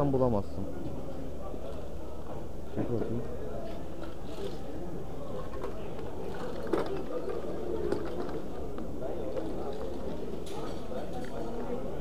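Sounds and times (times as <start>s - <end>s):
indoor market chatter: 0.0s - 12.0s.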